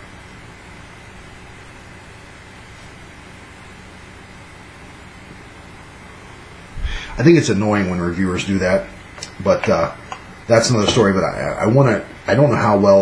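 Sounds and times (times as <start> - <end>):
faint low hum: 0.0 - 13.0
microphone hiss: 0.0 - 13.0.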